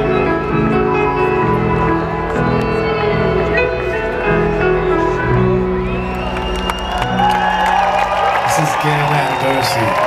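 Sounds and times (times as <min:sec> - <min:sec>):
crowd cheering and applauding: 0:00.0 - 0:10.0.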